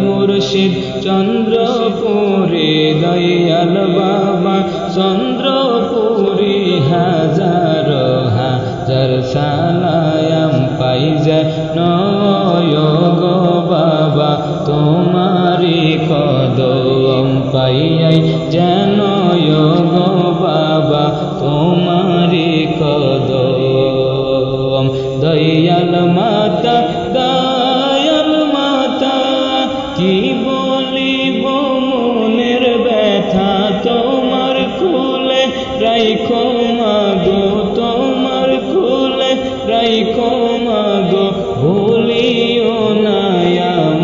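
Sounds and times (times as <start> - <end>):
chanted devotional melody: 0.0 - 44.0.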